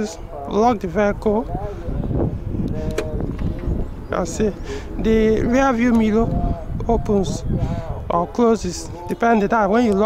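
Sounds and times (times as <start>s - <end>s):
wind rumble on microphone: 0.0s - 10.0s
car lock click: 2.9s - 3.4s.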